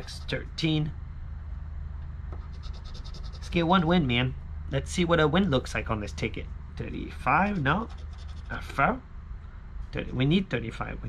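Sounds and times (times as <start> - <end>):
scratching lottery ticket coating: 2.4 - 3.7, 7.4 - 8.7.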